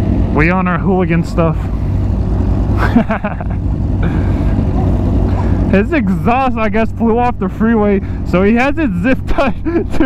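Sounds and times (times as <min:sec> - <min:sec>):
motorcycle engines idling: 0:00.0 - 0:10.0
person laughing: 0:02.7 - 0:05.7, 0:09.4 - 0:10.0.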